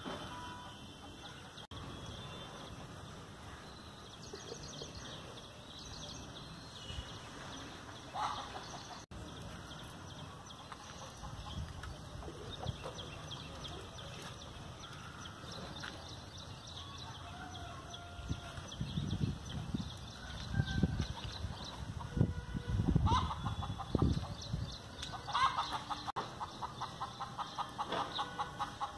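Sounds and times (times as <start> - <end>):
chickens clucking: 7.9 - 9.2, 21.1 - 28.9.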